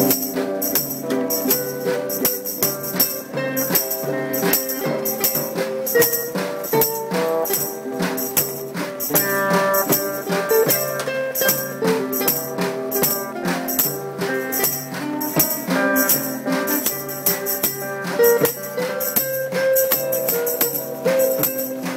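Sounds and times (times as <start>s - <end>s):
drum kit beat: 0.0s - 21.9s
guitars strumming chords: 0.0s - 21.9s.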